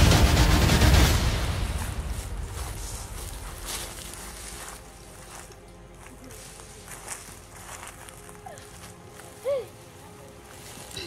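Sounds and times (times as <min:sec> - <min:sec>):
music track: 0:00.0 - 0:11.0
footsteps in dry leaves: 0:01.4 - 0:11.0.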